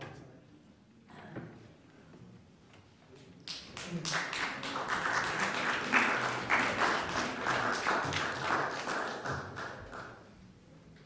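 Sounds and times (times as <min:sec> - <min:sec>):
small audience applauding: 0:03.4 - 0:10.3.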